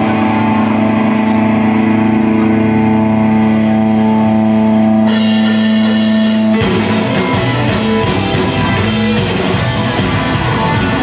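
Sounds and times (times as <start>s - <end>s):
distorted electric guitars and bass: 0.0s - 11.0s.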